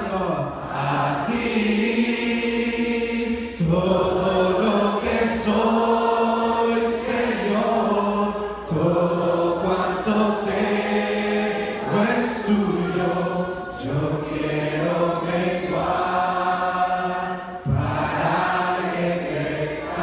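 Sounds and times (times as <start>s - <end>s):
man singing into a microphone: 0.0s - 10.6s, 11.9s - 20.0s
congregation singing a worship chorus: 0.0s - 20.0s.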